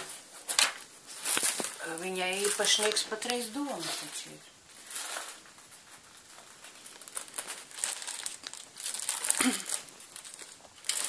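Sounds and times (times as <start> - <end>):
paper rustling and crinkling: 0.0 - 11.0.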